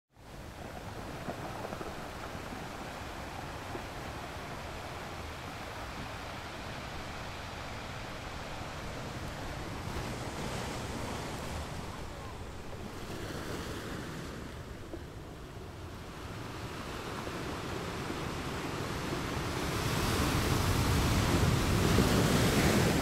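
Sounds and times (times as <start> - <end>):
ocean waves breaking: 0.2 - 23.0.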